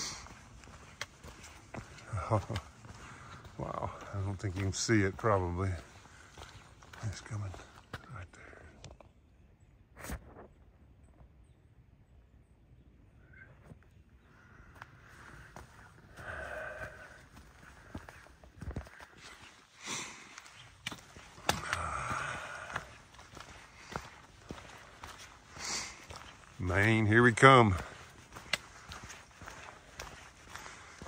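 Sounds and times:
footsteps crunching on leaves: 0.0s - 8.0s, 15.1s - 31.0s.

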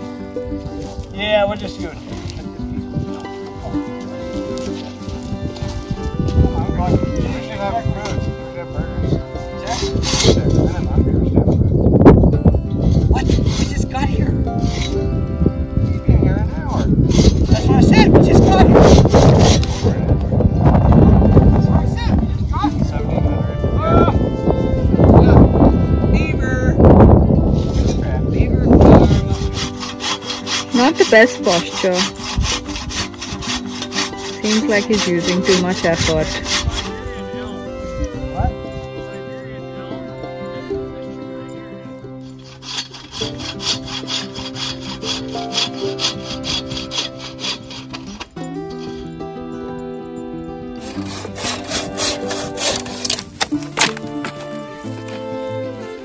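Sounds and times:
background music: 0.0s - 56.0s
saw cutting through log: 6.9s - 10.9s, 12.8s - 15.3s, 16.8s - 20.3s, 28.7s - 39.2s, 42.1s - 49.7s, 50.6s - 55.3s.

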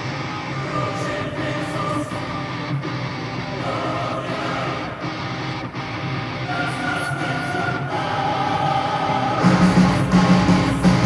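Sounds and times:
heavy metal band droning chord: 0.0s - 11.0s.

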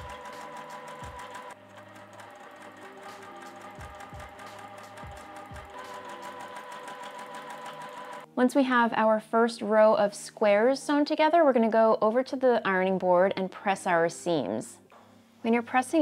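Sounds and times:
sewing machine stitching: 0.0s - 8.3s
soft background music: 0.0s - 16.0s.

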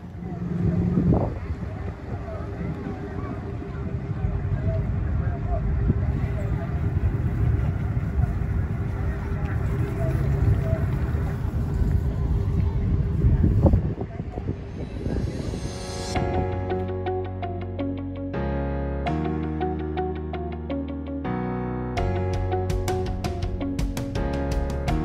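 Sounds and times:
boat engine droning: 0.0s - 16.1s
faint distant voices: 0.0s - 16.2s
wind buffeting microphone: 0.0s - 16.6s.

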